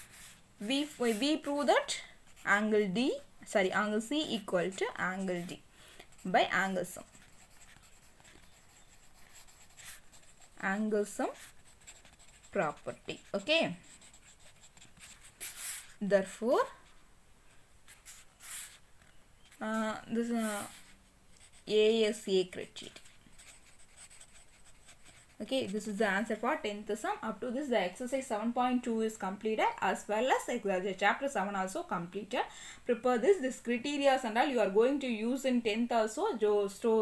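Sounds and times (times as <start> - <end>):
pen scratching on paper: 0.0 - 1.7, 2.3 - 2.9, 3.9 - 17.0, 17.9 - 18.8, 19.6 - 26.5.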